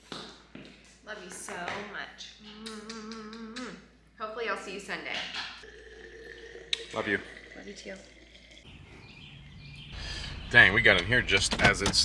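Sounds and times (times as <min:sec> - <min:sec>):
soft voices: 0:02.3 - 0:03.9.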